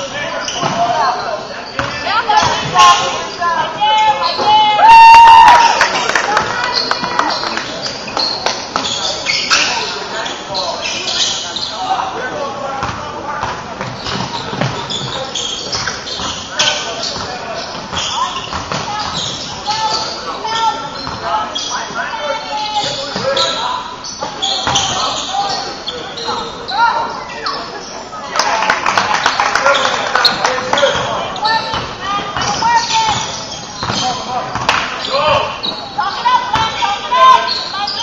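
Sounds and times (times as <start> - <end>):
sneakers squeaking on gym floor: 0.0 - 4.8, 6.6 - 12.1, 12.8 - 28.2, 29.7 - 38.0
players' voices: 0.0 - 38.0
basketball bouncing: 31.7 - 35.5.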